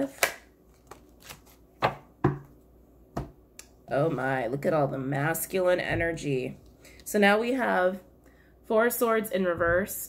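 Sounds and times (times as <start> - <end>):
cards being shuffled: 0.2 - 2.0.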